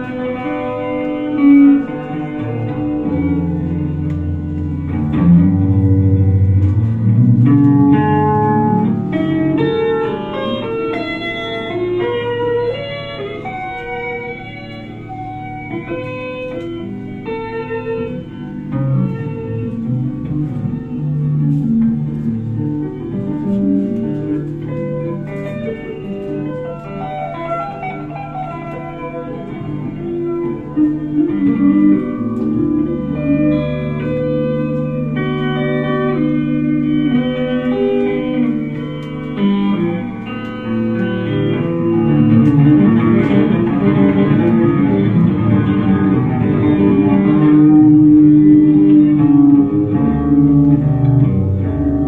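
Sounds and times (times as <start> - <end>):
electric guitar ringing notes: 0.0 - 52.0.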